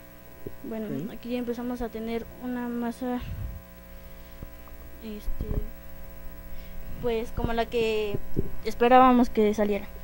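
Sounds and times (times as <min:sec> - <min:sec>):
electrical mains hum: 0:00.0 - 0:10.0
low thumps: 0:03.2 - 0:03.7.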